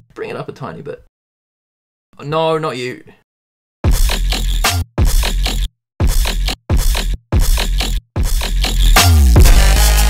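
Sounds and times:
dubstep with heavy sub-bass: 3.9s - 10.0s.

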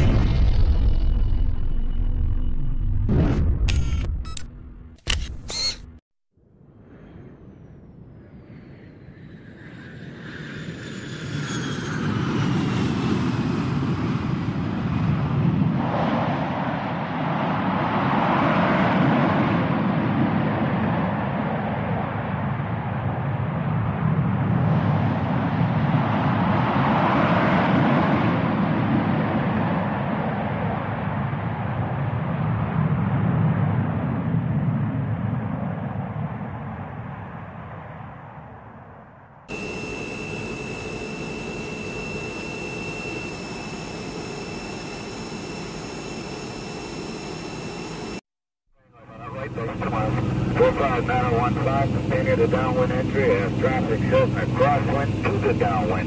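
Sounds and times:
aircraft engine whine and roar: 6.8s - 48.2s, 48.9s - 56.0s.

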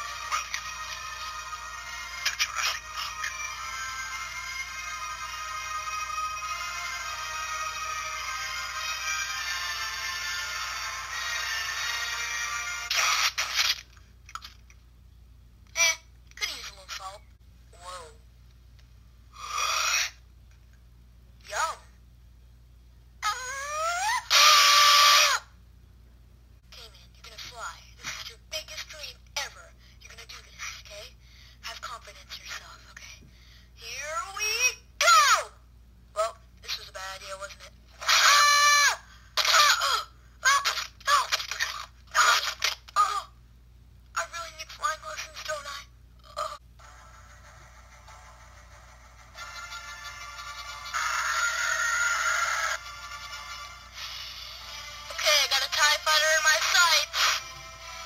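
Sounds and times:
cartoon voice rising in pitch: 23.2s - 25.5s
harsh cartoon scream: 23.2s - 25.5s, 38.0s - 40.6s.

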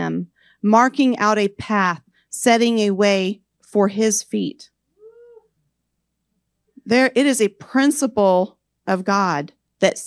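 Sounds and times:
woman speaking: 0.0s - 4.7s, 6.8s - 10.0s
brief high-pitched voice-like sound: 5.0s - 5.5s.

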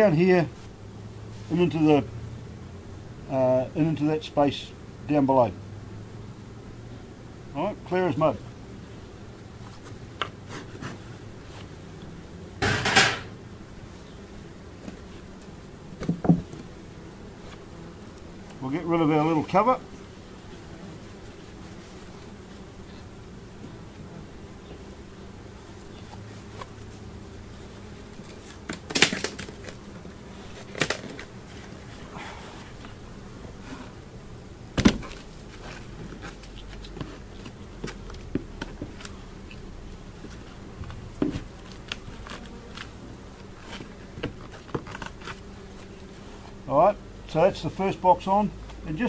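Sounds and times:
bees buzzing: 0.0s - 49.0s
knocks of hive boxes and tool: 9.7s - 11.0s, 11.6s - 13.4s, 14.8s - 18.6s, 28.0s - 31.8s, 34.7s - 39.6s, 40.2s - 46.6s.

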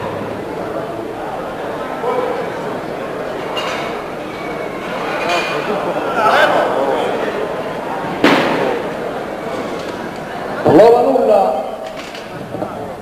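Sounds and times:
voices echoing in a hall: 0.0s - 13.0s.

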